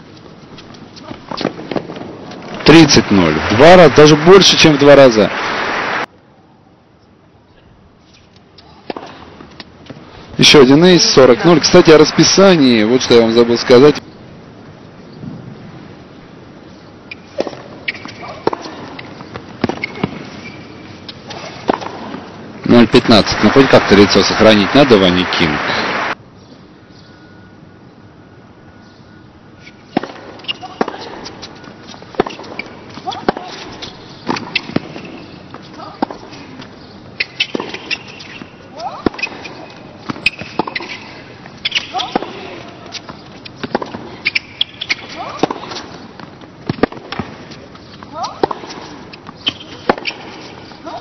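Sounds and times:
tennis ball struck by rackets: 0:21.4 - 0:22.3, 0:32.2 - 0:35.3, 0:37.3 - 0:46.0, 0:46.6 - 0:47.4, 0:48.1 - 0:50.5.

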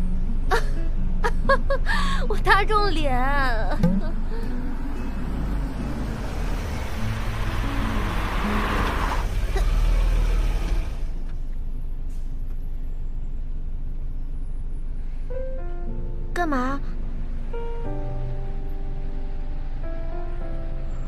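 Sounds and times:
road and engine rumble: 0:00.0 - 0:21.0.

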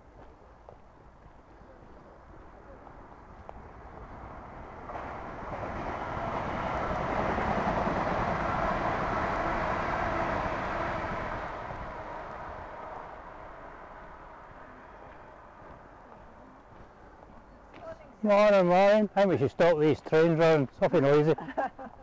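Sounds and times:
train passing: 0:00.9 - 0:21.4.

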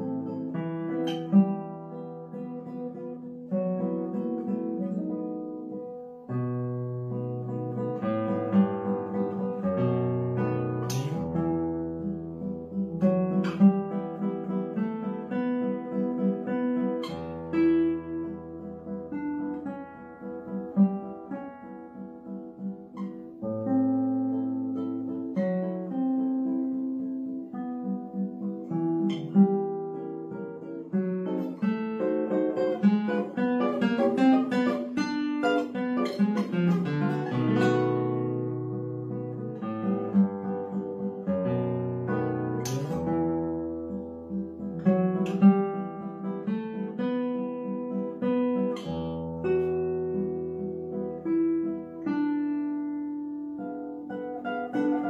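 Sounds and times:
solo classical guitar fingerstyle: 0:00.0 - 0:55.0.

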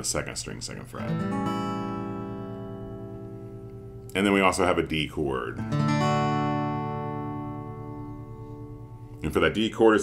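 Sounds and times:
acoustic guitar chord ringing: 0:01.0 - 0:04.8, 0:05.5 - 0:09.7.

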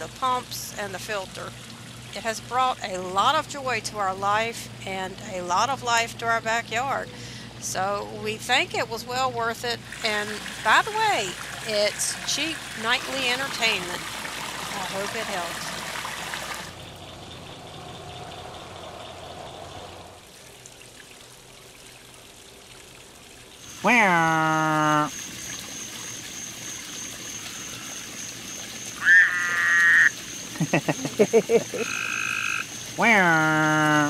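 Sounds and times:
faint trickling water: 0:00.0 - 0:34.0
frog calling: 0:16.7 - 0:20.1, 0:23.6 - 0:34.0
pulsed frog croaks: 0:23.6 - 0:34.0.

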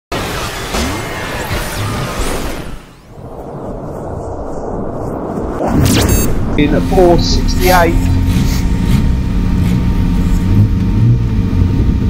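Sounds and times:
whooshing sweeps: 0:01.4 - 0:12.0
sharp hit: 0:05.6 - 0:10.7
intro music: 0:05.9 - 0:12.0.

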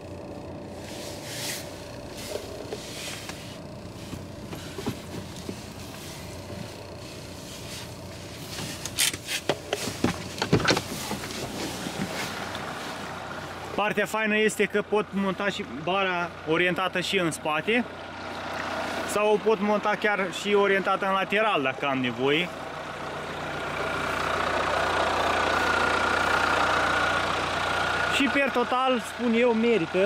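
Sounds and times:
car engine idling: 0:00.0 - 0:30.0.

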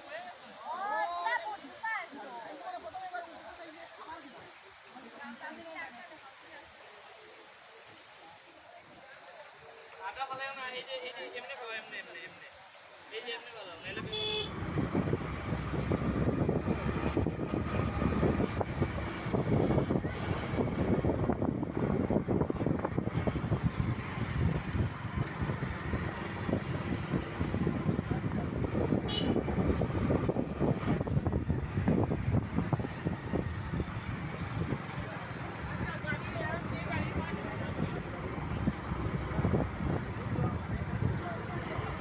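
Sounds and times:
wind buffeting microphone: 0:14.0 - 0:42.0
people's voices: 0:27.4 - 0:42.0
trucks and buses idling: 0:32.8 - 0:42.0.

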